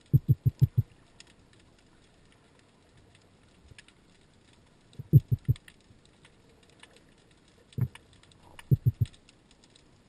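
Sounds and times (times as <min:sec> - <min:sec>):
underwater crackle of tiny clicks: 0:00.0 - 0:10.0.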